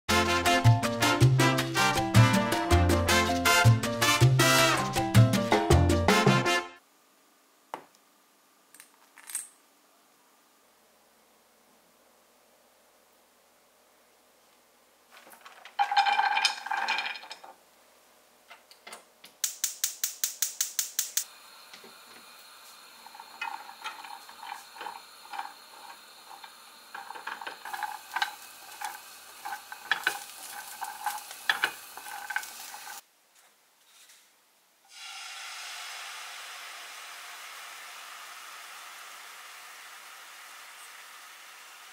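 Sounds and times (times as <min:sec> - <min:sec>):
nuts scraping and rattling in pan: 0:15.1 - 0:17.6, 0:22.9 - 0:33.0
walnuts clinking against metal pot: 0:15.2 - 0:17.6, 0:23.0 - 0:33.0.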